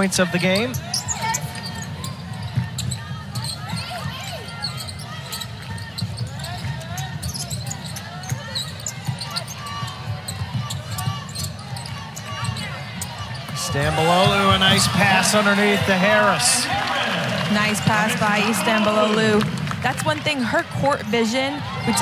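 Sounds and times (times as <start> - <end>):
murmur of crowd: 0.0 - 22.0
sneakers squeaking: 0.0 - 22.0.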